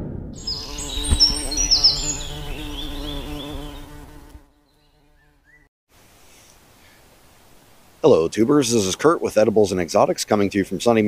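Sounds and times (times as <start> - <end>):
boom: 0.0 - 1.7
high chirping tones: 0.4 - 3.7
buzzing insect-like drone: 0.4 - 5.5.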